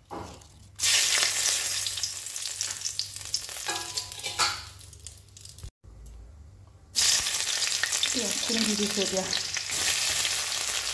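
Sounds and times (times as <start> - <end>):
leaves sizzling in hot oil: 0.8 - 5.7, 6.9 - 10.9.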